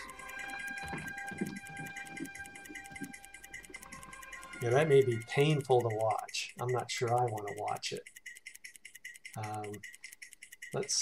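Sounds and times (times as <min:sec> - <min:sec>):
steady high whine: 0:00.0 - 0:05.4.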